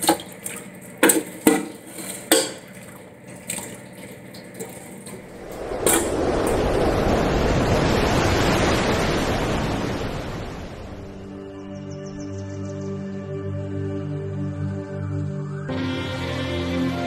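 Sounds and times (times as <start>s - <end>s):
ladle scraping metal pot: 0.0s - 6.1s
loud steady rushing noise: 5.2s - 11.5s.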